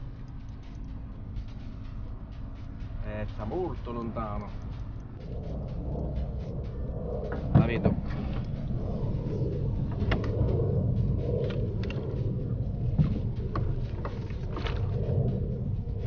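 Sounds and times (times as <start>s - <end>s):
wind and water rumble: 0.0s - 16.0s.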